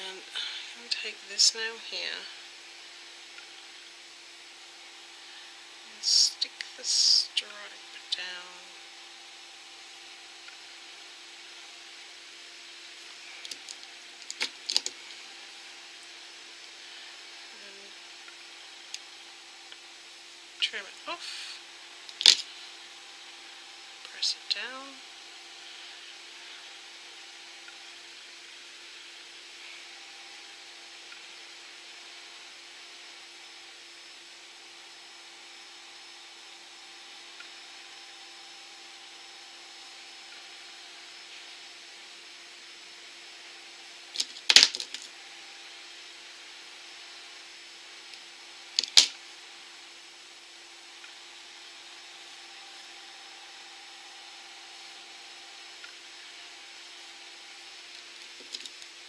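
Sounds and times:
faint steady hum: 0.0 - 59.0
scissors snipping tape: 48.8 - 49.1.

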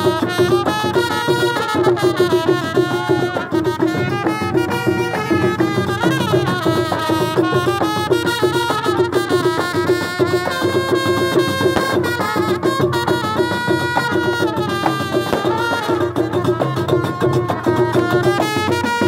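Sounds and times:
steady drum beat: 0.0 - 19.0
trumpets playing a melody: 0.0 - 19.0.

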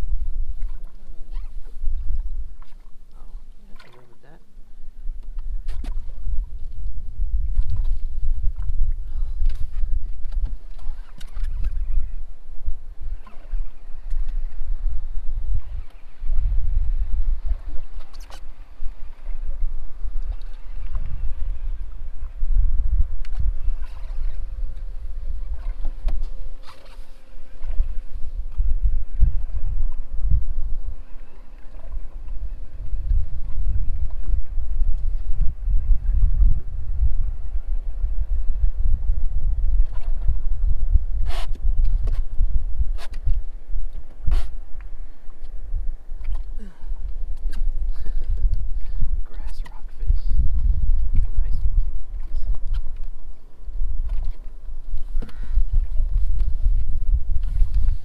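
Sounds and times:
wind on microphone: 0.0 - 58.0
water lapping against boat hull: 0.5 - 12.2, 23.1 - 30.1, 31.0 - 35.9, 41.2 - 58.0.

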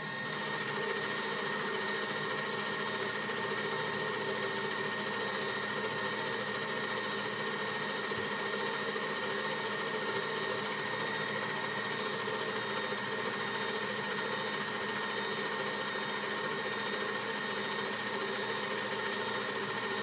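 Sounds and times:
metal lathe cutting with high whine: 0.0 - 20.0.

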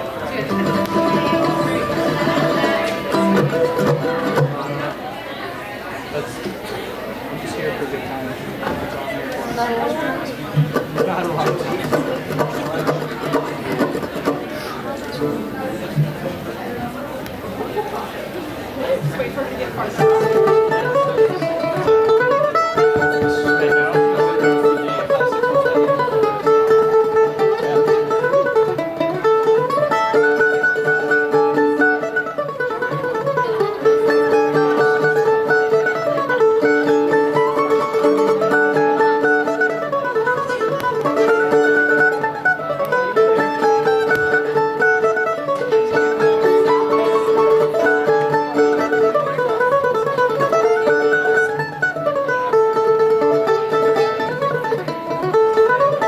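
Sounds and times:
mandolin noodling: 0.0 - 5.2, 9.6 - 56.0.

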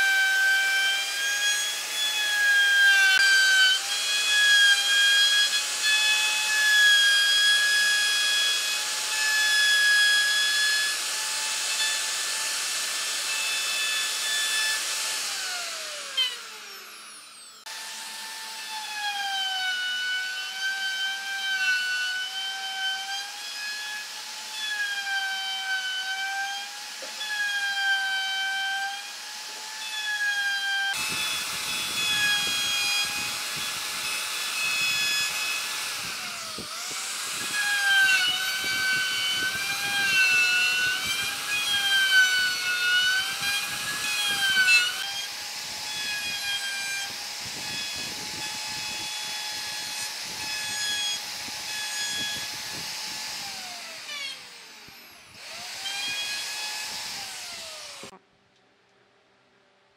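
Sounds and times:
router cutting wood: 0.0 - 58.2
router motor whining: 0.0 - 58.2.

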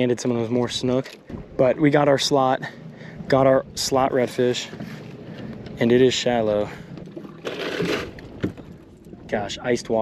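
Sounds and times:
water sloshing: 4.2 - 9.4.

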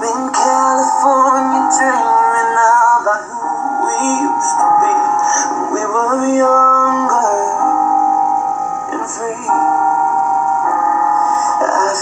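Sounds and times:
person singing a slow ballad: 0.0 - 12.0.

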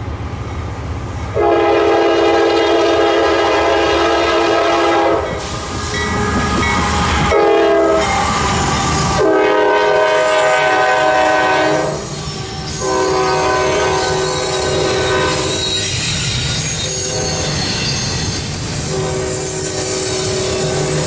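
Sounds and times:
train rumbling on rails: 0.0 - 21.0
locomotive air horn blasts: 1.4 - 5.4, 7.3 - 12.1, 12.8 - 15.8, 16.8 - 17.6, 18.9 - 21.0.

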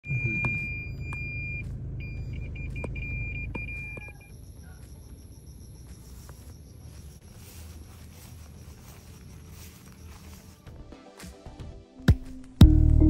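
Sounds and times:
car warning beeper: 0.0 - 10.6
engine and road rumble: 0.0 - 11.0.

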